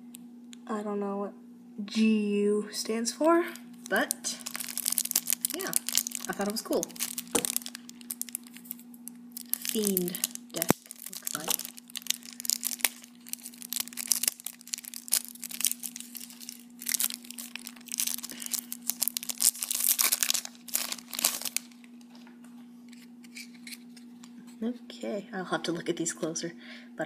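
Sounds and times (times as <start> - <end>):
plastic wrap crinkling and tearing: 3.7 - 22.2.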